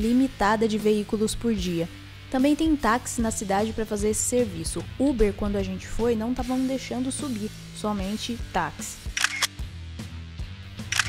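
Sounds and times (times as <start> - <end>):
background music: 0.0 - 11.0
camera shutter clicks: 9.1 - 9.6.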